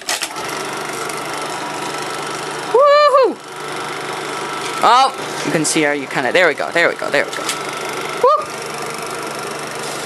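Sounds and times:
film projector running: 0.0 - 10.0.

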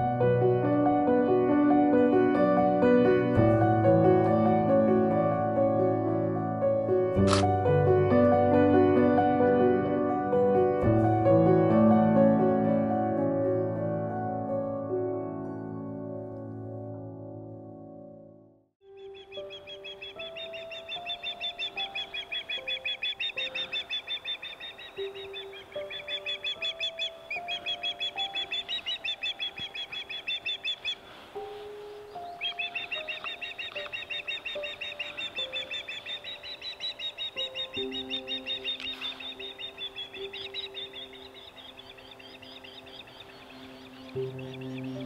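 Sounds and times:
soft background music: 0.0 - 45.0
osprey calling: 18.9 - 45.0.

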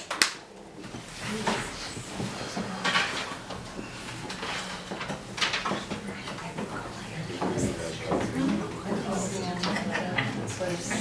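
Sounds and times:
faint room murmur: 0.0 - 11.0.

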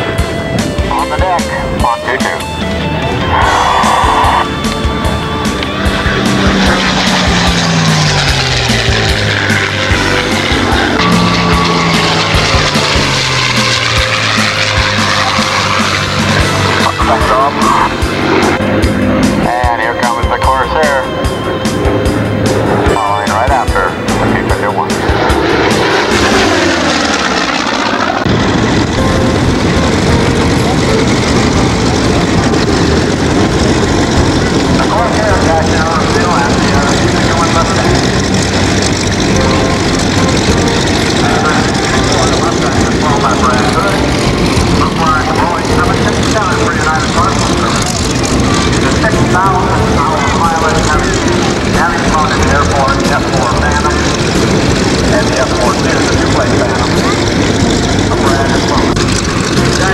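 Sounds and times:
propeller plane passing by: 0.0 - 59.9
steady mechanical noise: 0.0 - 59.9
voices: 0.8 - 7.6, 13.7 - 18.6, 19.2 - 21.7, 22.8 - 25.8, 34.2 - 59.9.

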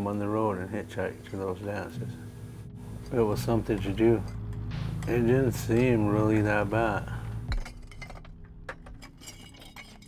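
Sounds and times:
glass bottles clinking: 6.9 - 10.0.

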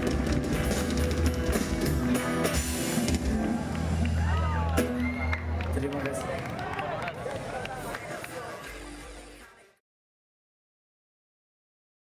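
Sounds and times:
crowd voices calling out: 3.2 - 9.7.

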